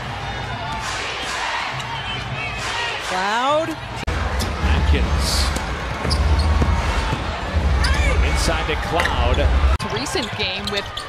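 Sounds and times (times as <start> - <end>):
low arena rumble: 4.1 - 9.8.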